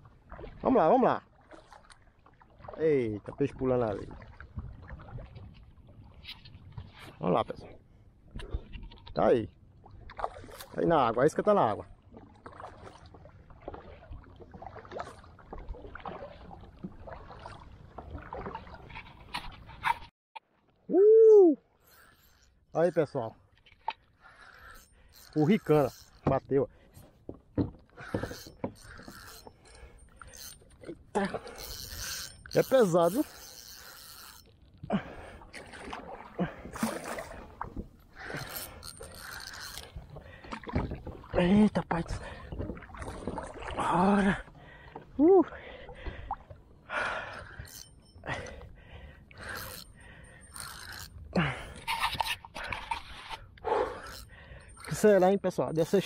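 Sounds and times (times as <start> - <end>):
paddle strokes in water: 0.0 - 2.8, 11.8 - 20.8, 23.4 - 55.2
spinning reel cranking: 24.4 - 26.2, 28.2 - 30.6, 31.5 - 34.5, 38.3 - 39.9, 47.6 - 48.0, 49.4 - 51.1, 54.0 - 55.0.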